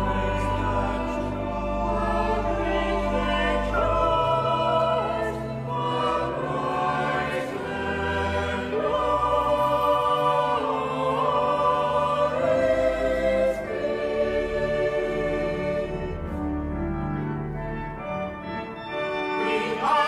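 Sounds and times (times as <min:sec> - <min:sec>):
church choir singing: 0:00.0 - 0:20.0.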